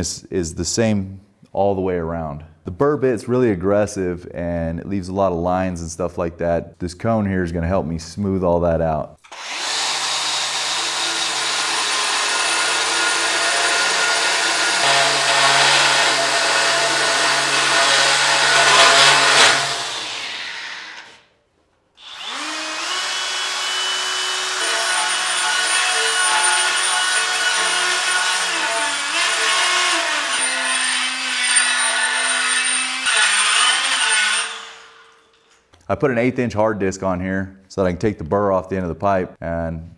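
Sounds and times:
angle grinder grinding steel pipe: 0:09.3 - 0:21.2, 0:22.0 - 0:35.5.

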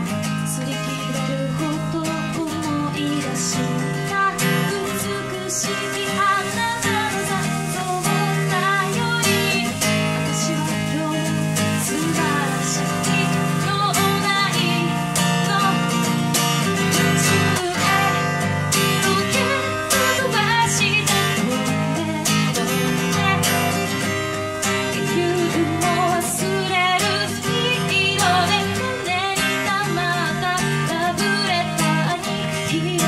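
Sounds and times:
acoustic guitar strumming: 0:00.0 - 0:33.0
woman singing: 0:00.0 - 0:33.0.

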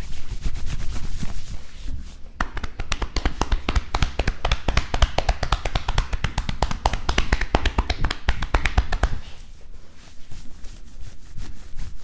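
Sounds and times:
hands slapping a back: 0:02.4 - 0:09.5.

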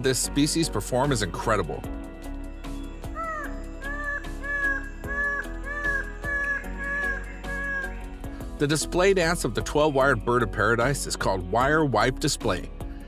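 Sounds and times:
bird calling short arched notes: 0:03.0 - 0:08.2.

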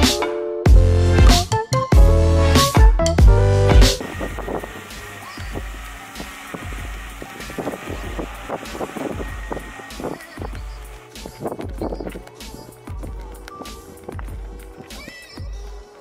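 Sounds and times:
electronic music with heavy beat: 0:00.0 - 0:16.0
drone whine: 0:03.2 - 0:14.9
wind rumbling on microphone: 0:04.0 - 0:14.9.

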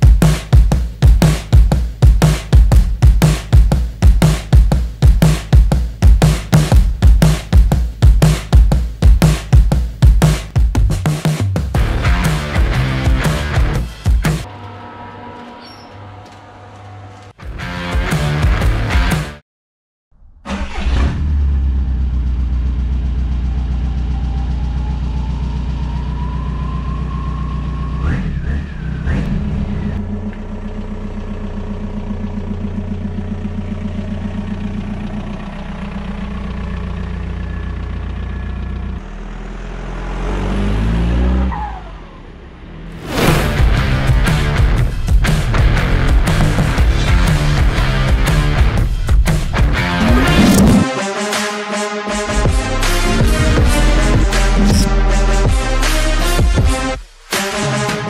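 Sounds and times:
music: 0:00.0 - 0:19.4, 0:43.2 - 0:58.0
car engine starting and running: 0:20.2 - 0:57.0.

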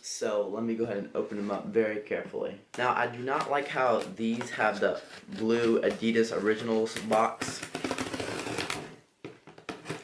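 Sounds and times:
blade slitting packing tape: 0:07.7 - 0:08.9.

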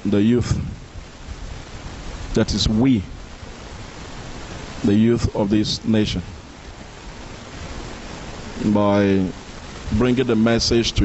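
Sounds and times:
man speaking through microphone: 0:00.0 - 0:00.8, 0:02.3 - 0:03.2, 0:04.8 - 0:06.4, 0:08.6 - 0:11.0
background hiss: 0:00.0 - 0:11.0.

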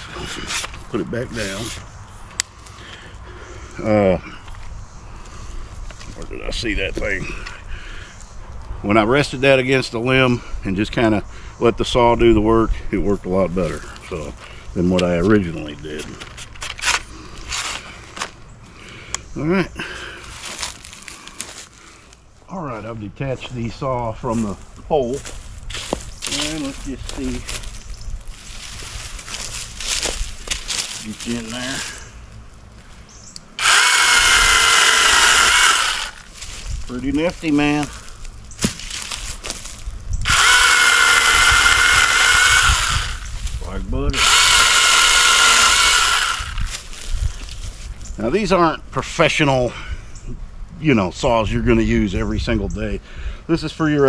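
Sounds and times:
mini chainsaw whining: 0:33.6 - 0:36.3, 0:40.2 - 0:43.4, 0:44.1 - 0:46.8.

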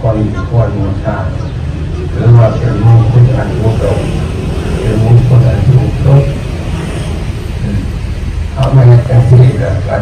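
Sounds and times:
man speaking over amplification: 0:00.0 - 0:06.8, 0:07.5 - 0:10.0
steady low rumble: 0:00.0 - 0:10.0.

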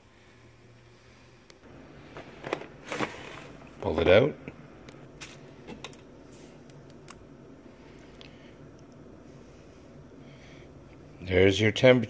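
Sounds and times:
low steady background: 0:00.0 - 0:12.0.

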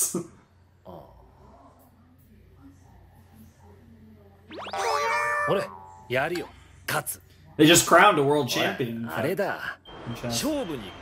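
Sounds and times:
comic pitch gliding effect: 0:04.5 - 0:06.5.

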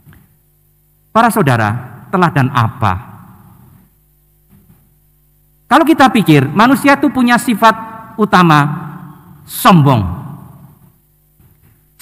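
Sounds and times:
man speaking in reverberant church: 0:01.1 - 0:03.5, 0:05.7 - 0:10.8.

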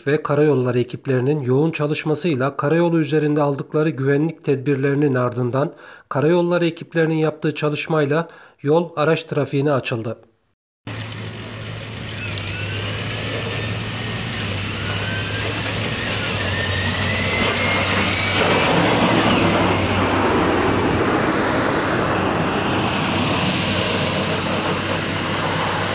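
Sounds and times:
road noise: 0:10.9 - 0:25.9
tractor engine passing: 0:10.9 - 0:25.9.

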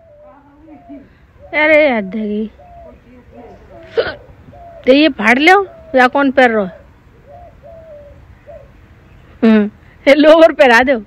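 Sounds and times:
faint bird calls: 0:00.0 - 0:10.0.

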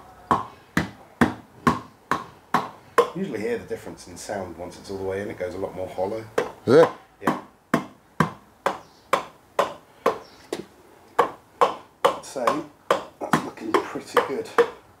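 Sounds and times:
sharp taps on cylinder block: 0:00.3 - 0:03.2, 0:06.3 - 0:14.8.

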